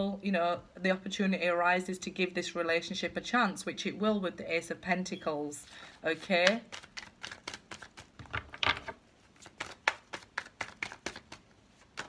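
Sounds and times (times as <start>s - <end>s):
cards being shuffled by hand: 6.2s - 12.0s.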